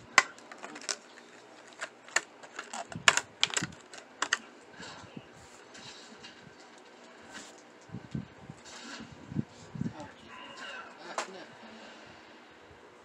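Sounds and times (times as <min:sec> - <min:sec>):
plastic packaging torn open: 0:00.1 - 0:04.4.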